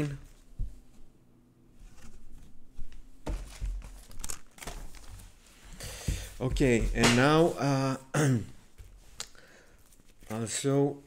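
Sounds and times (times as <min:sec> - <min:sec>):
vinyl record rustling and knocks: 0:03.2 - 0:05.1, 0:06.1 - 0:07.5.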